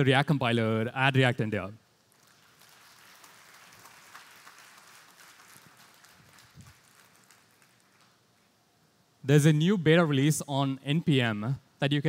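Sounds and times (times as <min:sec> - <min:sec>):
faint audience applause: 0:02.1 - 0:08.2.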